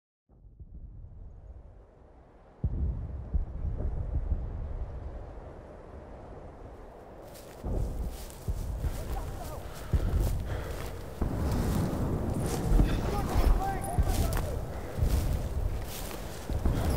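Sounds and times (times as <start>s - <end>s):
crackling noise: 0.8s - 16.9s
deep low booms: 2.6s - 5.6s, 7.6s - 16.9s.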